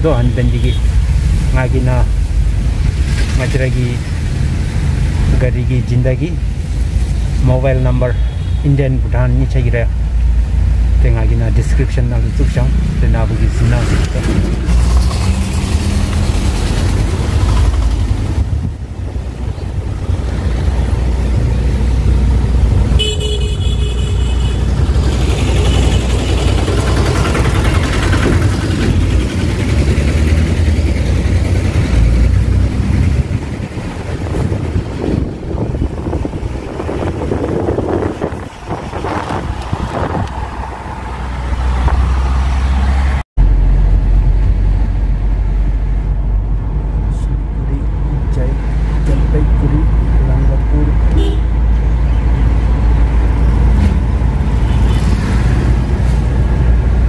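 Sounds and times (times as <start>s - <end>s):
road and engine rumble in car: 0.0s - 57.0s
vehicle horn honking: 8.1s - 8.7s, 22.9s - 26.5s, 51.1s - 51.5s.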